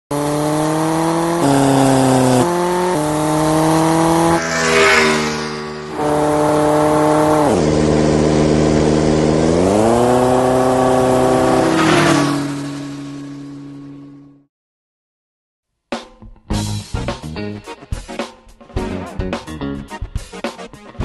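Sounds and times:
motorcycle engine revving: 0.1 - 14.5.

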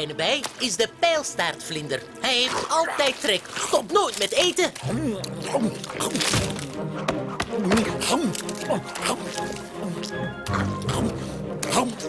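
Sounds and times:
cartoon background music: 0.0 - 12.0.

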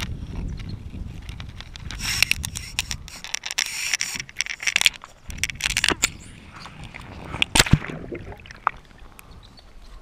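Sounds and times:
bobber splashing into water: 7.3 - 8.9.

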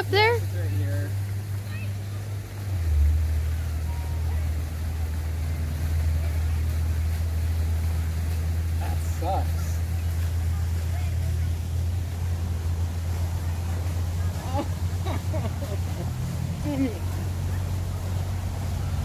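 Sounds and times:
low rumble: 0.0 - 19.0.

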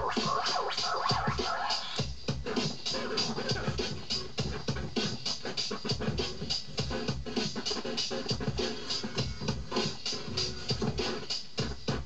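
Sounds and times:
drum beat: 0.0 - 12.0
vinyl record scratching: 0.0 - 12.0.

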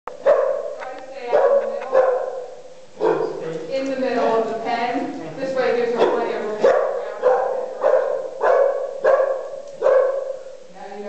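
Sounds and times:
dog barking sharply: 0.2 - 3.4, 6.0 - 10.5.

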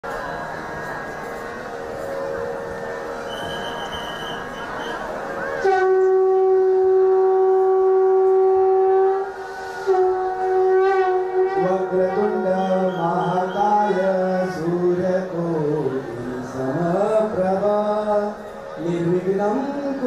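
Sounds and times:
conch shell blown: 3.2 - 14.6.

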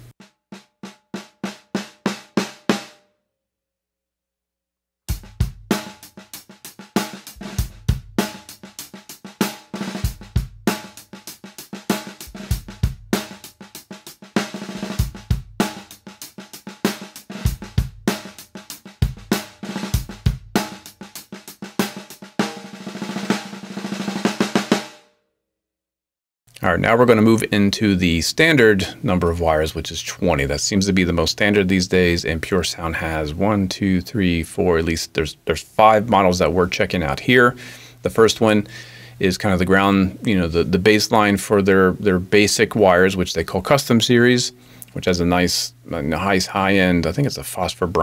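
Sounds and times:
drum kit groove: 0.0 - 3.0, 5.1 - 25.0, 26.6 - 48.0
snare drum strokes: 5.1 - 25.0.

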